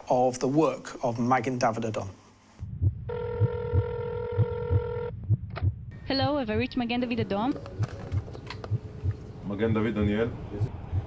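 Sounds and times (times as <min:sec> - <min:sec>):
low pulsing beat: 0:02.6 - 0:11.0
telephone ringing tone beep: 0:03.1 - 0:05.1.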